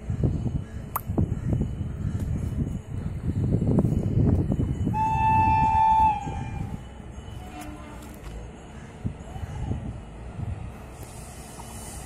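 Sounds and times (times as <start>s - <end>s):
station ambience: 0.0s - 12.0s
train rumble: 0.0s - 12.0s
locomotive horn blast: 4.9s - 6.7s, 7.4s - 8.2s.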